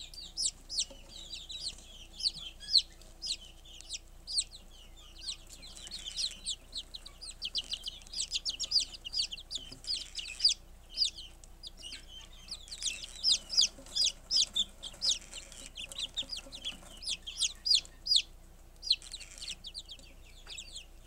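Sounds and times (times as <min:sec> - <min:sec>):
chicks peeping: 0:00.0 - 0:21.0.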